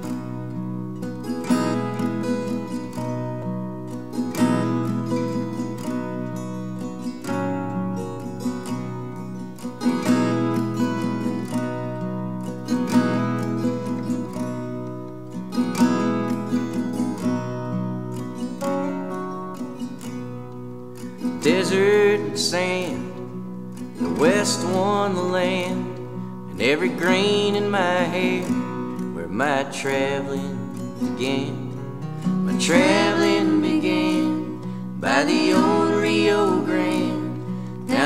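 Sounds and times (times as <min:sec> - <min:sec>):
acoustic guitars strumming: 0:00.0 - 0:38.0.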